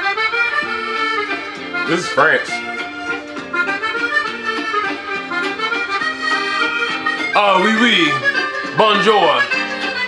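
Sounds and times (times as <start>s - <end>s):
accordion music: 0.0s - 10.0s.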